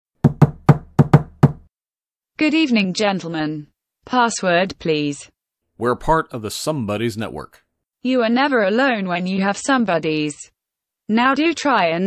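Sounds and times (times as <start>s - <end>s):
knocking on a door: 0.2s - 1.7s.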